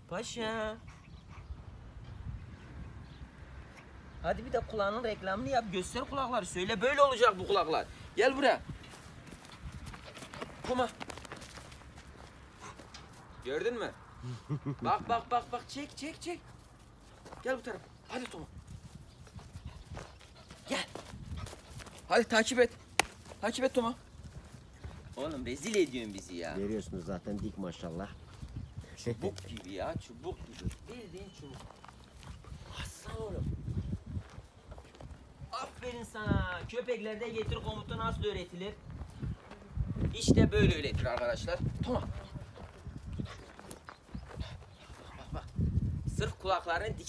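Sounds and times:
puppy paws on ground: 5.6s - 14.2s, 15.0s - 47.0s
footsteps on grass and dirt: 5.8s - 13.8s, 14.4s - 47.0s.

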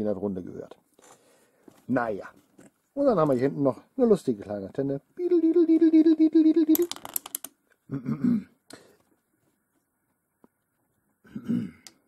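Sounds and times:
man's wavering hesitation sound: 5.2s - 7.0s
plastic toy parts clicking: 6.7s - 7.6s
man mumbling: 7.9s - 8.5s.

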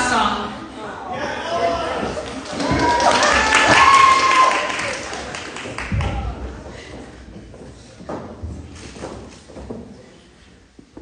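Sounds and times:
shoes on wooden stage: 1.4s - 11.0s
person whooping: 2.8s - 4.8s.

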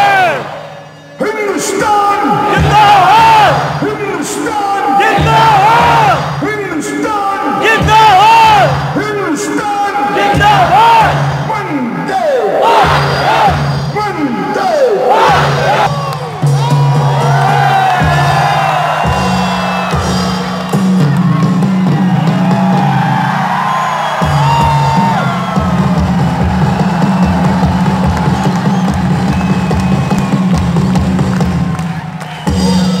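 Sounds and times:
music over loudspeakers: 0.0s - 33.0s
stadium crowd cheering: 0.0s - 33.0s.

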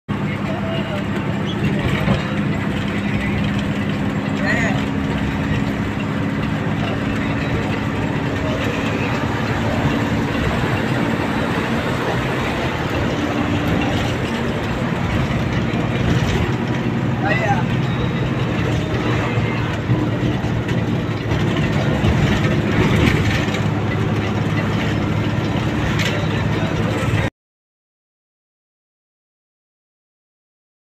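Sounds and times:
bus engine hum: 0.1s - 27.3s
road noise inside bus: 0.1s - 27.3s.

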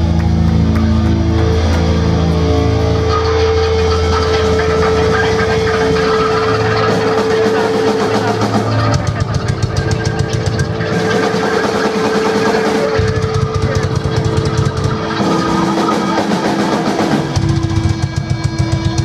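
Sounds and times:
distorted electric guitar and bass: 0.0s - 19.0s
drum kit fast beat: 3.2s - 19.0s.

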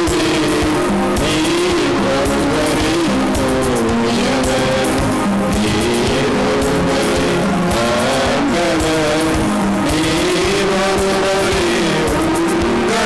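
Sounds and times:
devotional song with drums: 0.0s - 13.0s.

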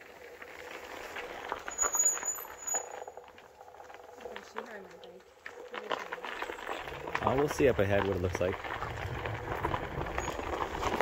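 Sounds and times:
tyre crunching on gravel: 4.4s - 11.0s.

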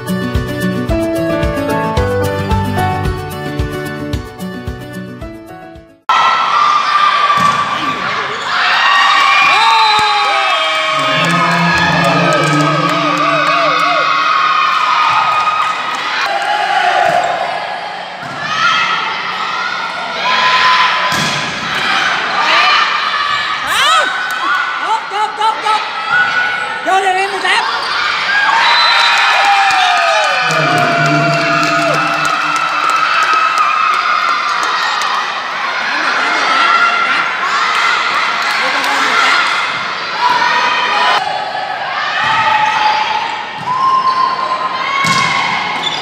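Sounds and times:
intro music: 0.0s - 5.9s, 30.4s - 33.0s
spectators and players shouting: 6.1s - 46.0s.

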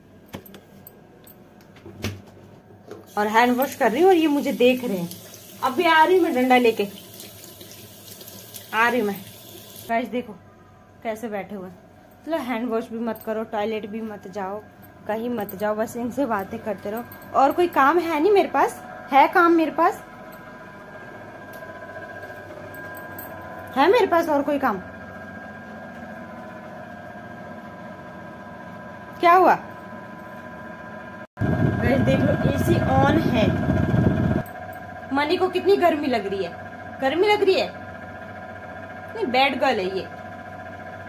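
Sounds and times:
household appliance humming: 2.9s - 9.9s, 13.2s - 41.0s
tap water running into sink: 3.4s - 9.9s.

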